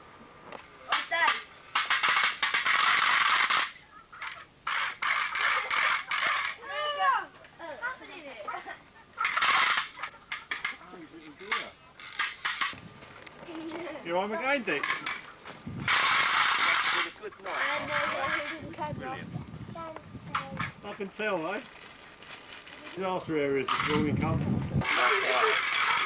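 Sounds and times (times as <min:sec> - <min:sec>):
people talking indistinctly: 0:05.3 - 0:26.0.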